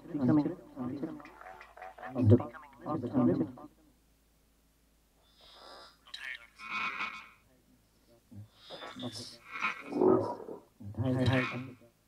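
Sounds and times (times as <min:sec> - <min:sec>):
processed wavering vocal syllables: 0:08.3 - 0:11.9.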